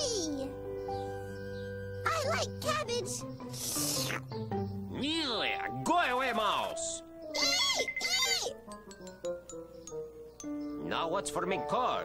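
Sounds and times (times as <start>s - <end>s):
light background music: 0.0s - 12.0s
high-pitched squeaky cries: 7.3s - 8.6s.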